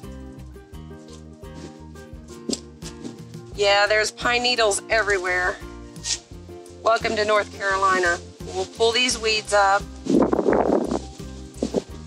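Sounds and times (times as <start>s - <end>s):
music with bass beat: 0.0s - 12.0s
weeds pulled crackling rustle: 0.0s - 12.0s
short scuffs: 1.0s - 3.4s.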